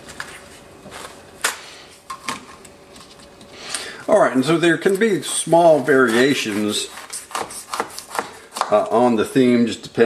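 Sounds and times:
knife scraping on cutting board: 0:05.2 - 0:08.9.

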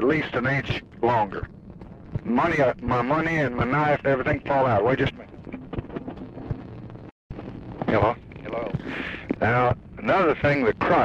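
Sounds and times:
low steady hum: 0:00.0 - 0:11.0
telephone line hiss and crackle: 0:00.0 - 0:11.0.

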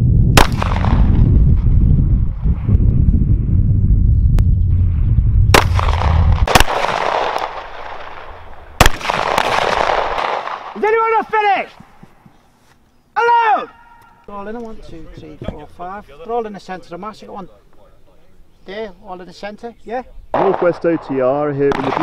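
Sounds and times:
low rumble: 0:00.0 - 0:06.5
pistol shots with echo: 0:00.4 - 0:01.2, 0:05.6 - 0:10.8, 0:20.4 - 0:22.0.

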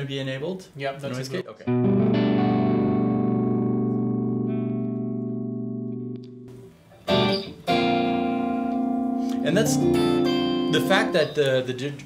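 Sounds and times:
clean electric guitar chords: 0:01.6 - 0:11.4.

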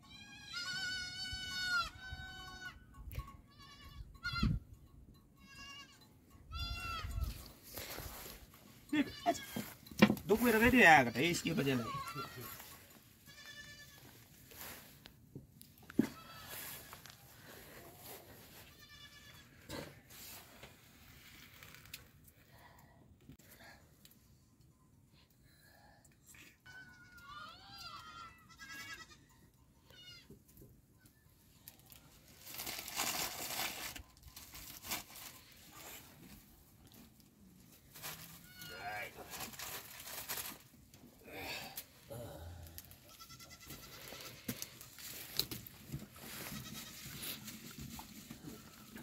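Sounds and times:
high animal bleat: 0:00.1 - 0:02.8, 0:03.5 - 0:04.6, 0:05.4 - 0:07.3, 0:08.9 - 0:09.7, 0:11.8 - 0:14.2, 0:18.6 - 0:19.8, 0:26.6 - 0:30.3, 0:38.4 - 0:39.2, 0:42.2 - 0:44.6, 0:46.3 - 0:47.5
plastic bag crinkling: 0:32.4 - 0:35.6, 0:39.2 - 0:40.7
sheep bleating: 0:43.0 - 0:44.4.

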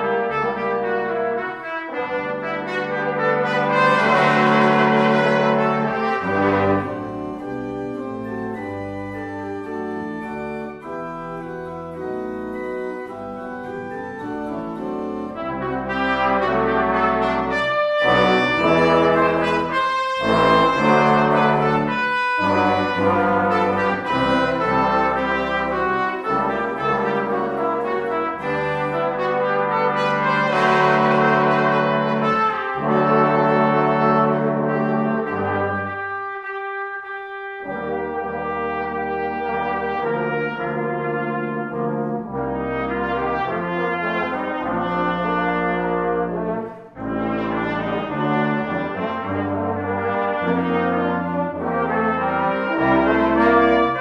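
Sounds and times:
brass and organ march: 0:00.0 - 0:54.0.

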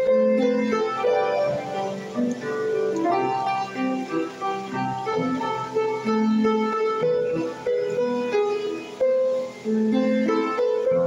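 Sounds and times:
slow gospel piano melody: 0:00.0 - 0:11.0.

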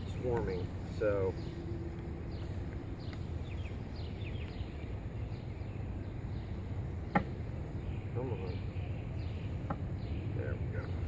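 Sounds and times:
birds chirping: 0:00.0 - 0:11.0
low outdoor rumble: 0:00.0 - 0:11.0.

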